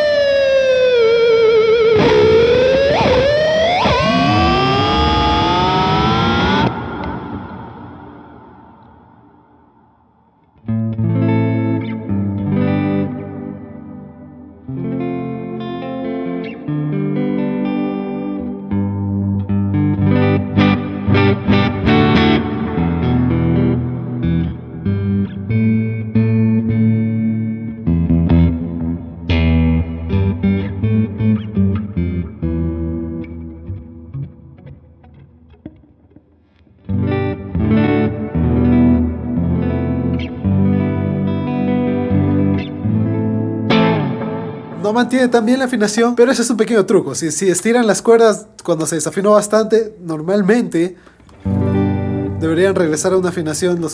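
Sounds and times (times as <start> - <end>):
guitar pitch glide: 0.0 - 9.9, 10.5 - 45.2, 51.2 - 53.6
electric guitar through amp: 0.0 - 46.9, 50.8 - 53.9.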